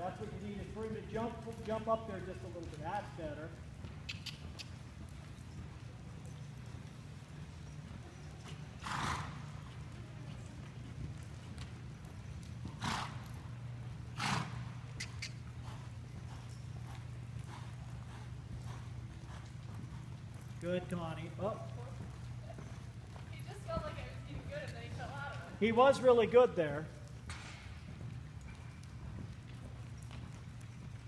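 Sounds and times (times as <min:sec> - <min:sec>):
soft hoofbeats on dirt: 0:00.0 - 0:31.0
steady low hum: 0:00.0 - 0:31.0.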